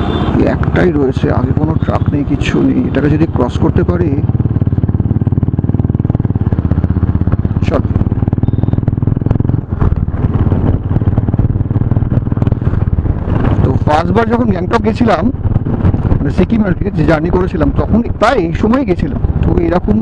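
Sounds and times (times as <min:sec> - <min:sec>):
motorcycle cruising: 0:00.0 - 0:20.0.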